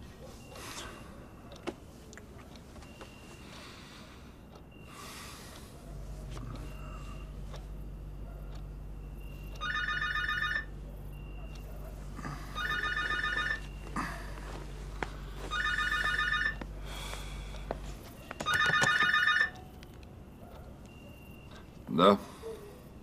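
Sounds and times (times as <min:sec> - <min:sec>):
telephone ringing with electronic trill: 0:09.0 - 0:11.5, 0:12.4 - 0:14.0, 0:15.4 - 0:16.7, 0:18.2 - 0:19.7.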